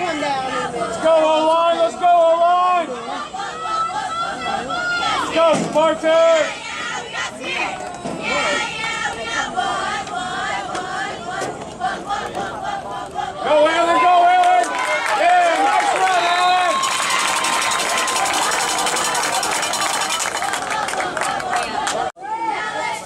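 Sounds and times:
crowd shouting and cheering: 0:00.0 - 0:23.0.

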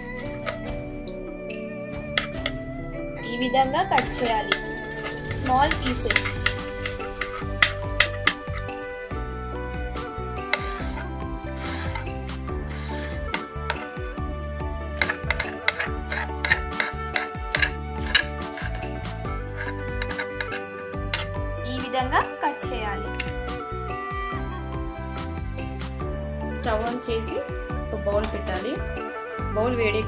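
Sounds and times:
background music: 0:00.0 - 0:30.0
knife cutting vegetable: 0:15.0 - 0:18.8.

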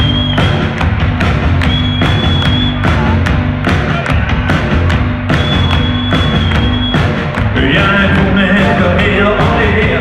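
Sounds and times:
drums beating: 0:00.0 - 0:10.0
live rock band playing: 0:00.0 - 0:10.0
person singing: 0:07.6 - 0:10.0.

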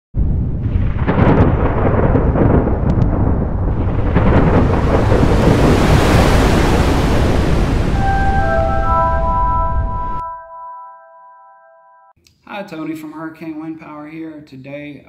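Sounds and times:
crackles: 0:00.2 - 0:07.9
deep thunder-like rumble: 0:00.2 - 0:10.2
rushing wind-like noise: 0:00.2 - 0:10.2.

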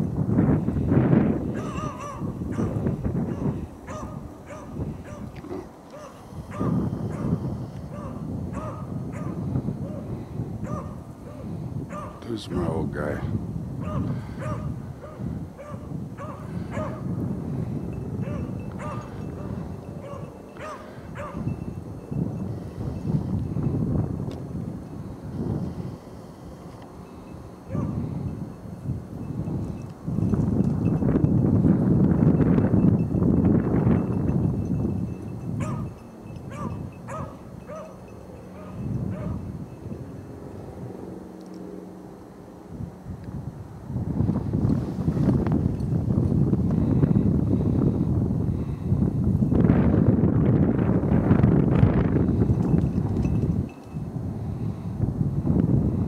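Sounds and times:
wind rumble on microphone: 0:00.0 - 0:56.0
dog yelping: 0:01.6 - 0:07.3, 0:07.9 - 0:10.0, 0:10.6 - 0:12.2, 0:13.8 - 0:17.0, 0:18.2 - 0:19.1, 0:20.0 - 0:21.4, 0:35.6 - 0:35.8, 0:36.5 - 0:38.0, 0:38.6 - 0:39.4.

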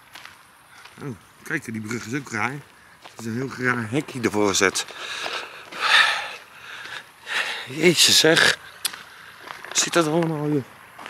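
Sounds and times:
man breathing into microphone: 0:04.9 - 0:07.7.

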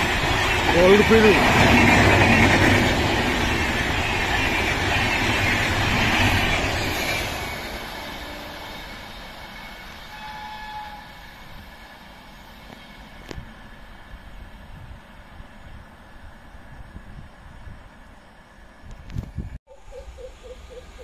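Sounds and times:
train wheels clattering on rails: 0:00.0 - 0:11.8.

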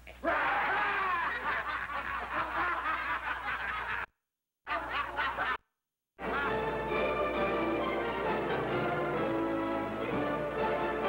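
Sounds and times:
crowd laughing loudly: 0:00.3 - 0:04.1, 0:04.7 - 0:05.6.

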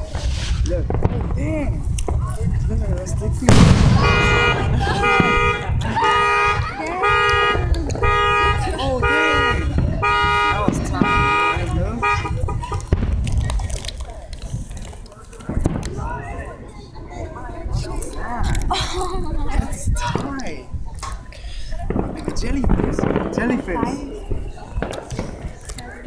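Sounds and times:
loud firework bang: 0:00.0 - 0:02.3, 0:03.4 - 0:13.6, 0:21.8 - 0:25.5.

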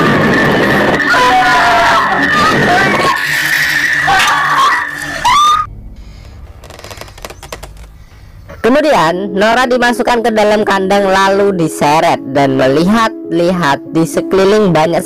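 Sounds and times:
people crying and screaming: 0:00.0 - 0:05.7
dense noise: 0:00.0 - 0:09.1
high whine: 0:00.0 - 0:10.2
low rumble: 0:00.0 - 0:10.7.

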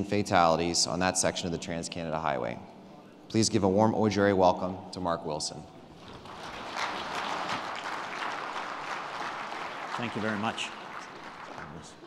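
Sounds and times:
audience applauding: 0:06.0 - 0:12.0.

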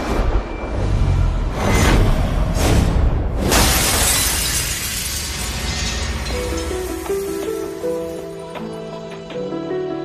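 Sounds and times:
glass shattering: 0:03.4 - 0:08.2.

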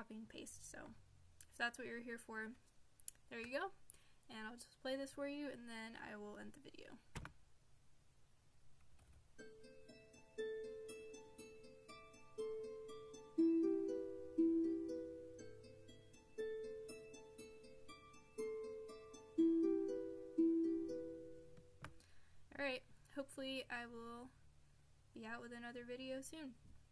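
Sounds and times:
sampled instrument music playback: 0:09.3 - 0:22.3.

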